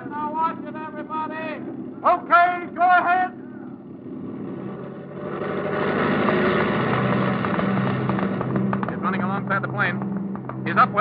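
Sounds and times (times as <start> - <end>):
propeller airplane engine droning: 0.0 - 11.0.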